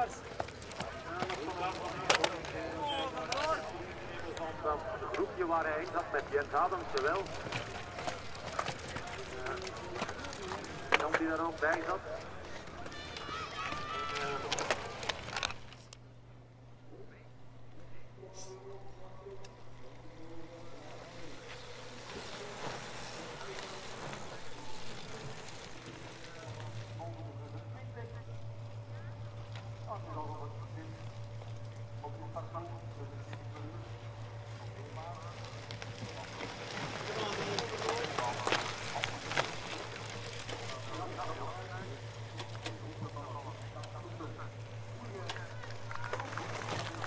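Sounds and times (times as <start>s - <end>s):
spectators' voices: 0.0s - 15.9s, 16.8s - 47.0s
steady low hum: 0.0s - 47.0s.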